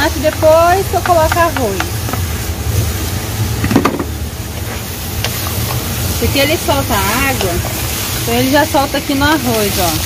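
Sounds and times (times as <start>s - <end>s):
food sizzling in pot: 0.0s - 10.0s.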